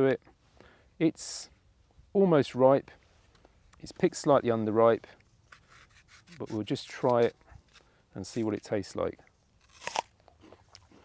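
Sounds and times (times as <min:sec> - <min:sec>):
faint chewing: 0:09.2 - 0:11.0
crunch of biting an apple: 0:09.6 - 0:11.0.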